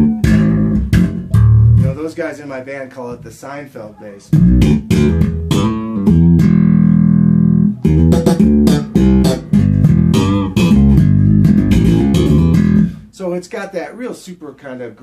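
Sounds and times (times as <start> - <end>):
electric bass funk riff: 0.0 - 2.2, 4.2 - 13.1.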